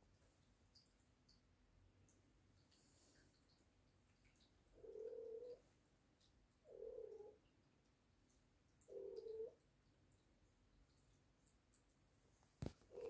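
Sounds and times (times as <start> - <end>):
faint low animal calls: 6.6 - 7.4.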